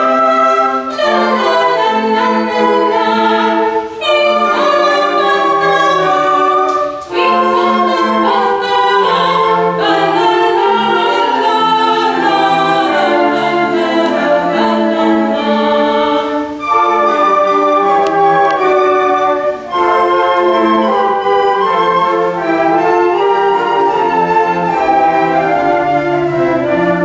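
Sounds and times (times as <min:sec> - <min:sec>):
woman singing classical song: 0:00.0 - 0:26.1.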